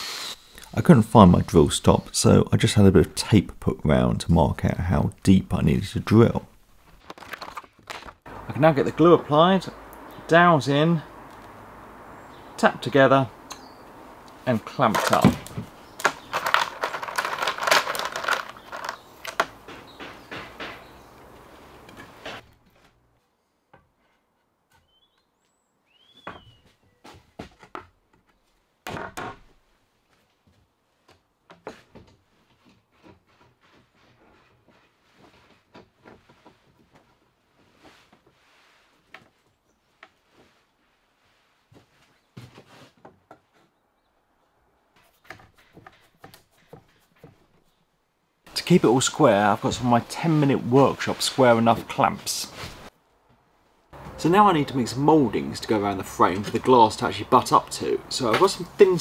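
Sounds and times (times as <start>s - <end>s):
wooden knocks: 14.9s - 21.0s.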